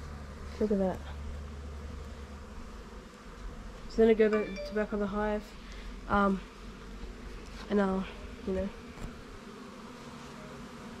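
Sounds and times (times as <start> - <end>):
honeybees buzzing: 0.0 - 11.0.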